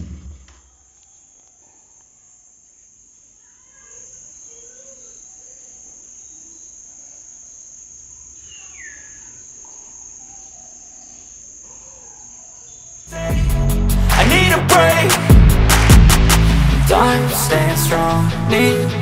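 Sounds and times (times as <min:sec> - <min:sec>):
crickets chirping: 0:00.0 - 0:19.0
loud music with a beat: 0:13.1 - 0:19.0.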